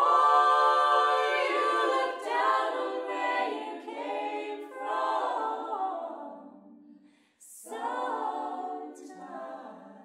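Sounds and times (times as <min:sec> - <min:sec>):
mixed choir singing a cappella: 0:00.0 - 0:10.0.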